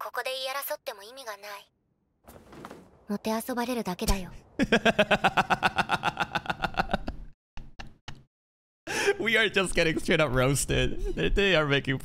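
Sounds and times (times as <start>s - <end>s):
man laughing hard: 4.6s - 7.3s, 10.8s - 11.4s.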